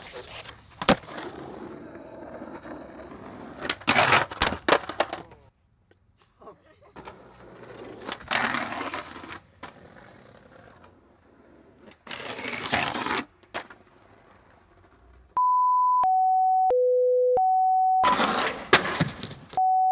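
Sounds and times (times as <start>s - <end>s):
skateboard grinding on concrete ledge: 0.0s - 5.3s, 7.0s - 15.3s, 18.1s - 19.4s
skateboard wheels rolling on concrete: 0.0s - 15.4s, 18.1s - 19.6s.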